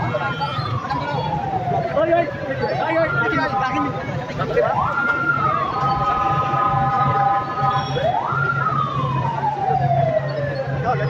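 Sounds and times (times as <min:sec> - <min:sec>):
wailing siren: 0:00.0 - 0:11.0.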